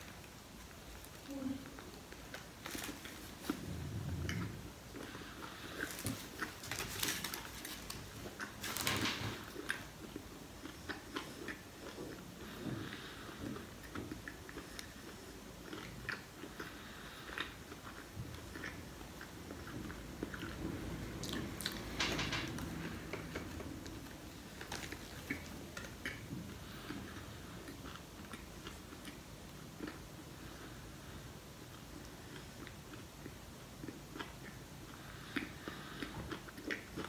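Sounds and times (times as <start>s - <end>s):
man chewing a sandwich: 0.0s - 22.0s, 22.6s - 37.0s.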